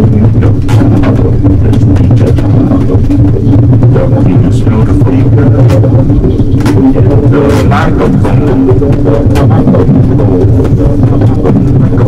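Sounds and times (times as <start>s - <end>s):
loud gritty low drone: 0.0s - 12.0s.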